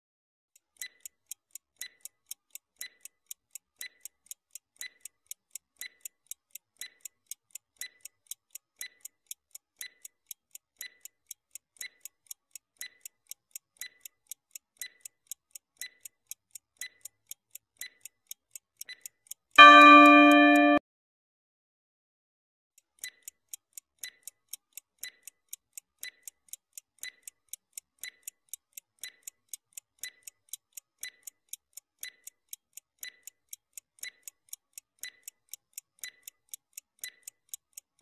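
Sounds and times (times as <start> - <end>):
countdown timer ticking: 19.6 - 20.8
ringing multi-pitch chime: 19.6 - 20.8.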